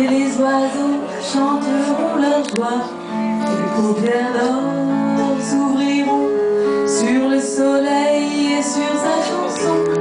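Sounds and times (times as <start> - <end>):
electric keyboard: 0.0 - 10.0.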